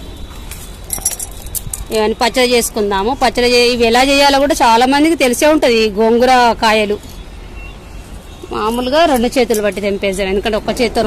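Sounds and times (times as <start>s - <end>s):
bangles jingling: 0.6s - 2.1s, 8.7s - 10.3s.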